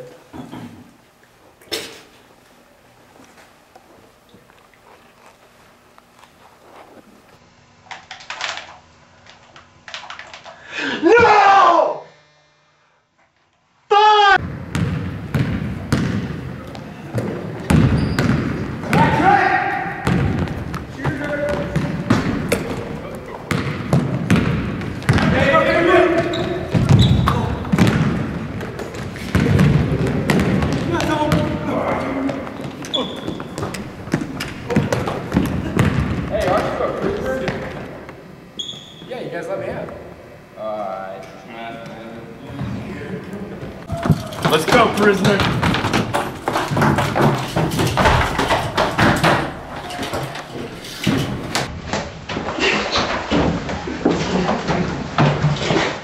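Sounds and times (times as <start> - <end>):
basketball bouncing on wooden floor: 14.4 - 19.2, 19.9 - 25.4, 26.2 - 36.7, 43.9 - 50.4.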